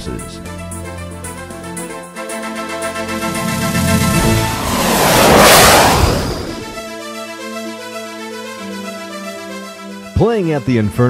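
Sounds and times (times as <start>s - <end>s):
whoosh transition effect: 3.0s - 6.8s.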